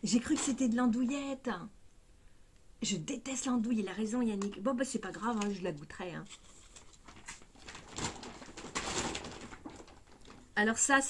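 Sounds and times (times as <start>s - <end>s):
packaging rustling: 5.1s - 10.6s.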